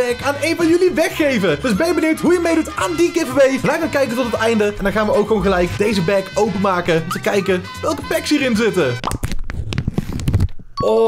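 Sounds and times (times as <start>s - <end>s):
foil pouch tearing open: 9.1s - 10.6s.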